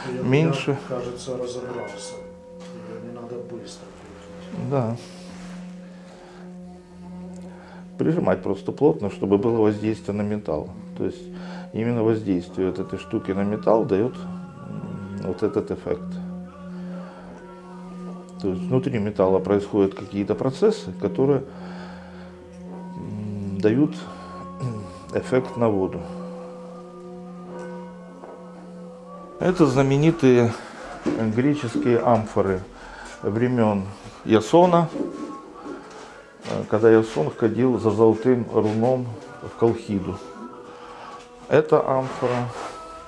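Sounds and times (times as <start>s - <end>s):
singing bowl ringing hum: 0.0s - 36.2s.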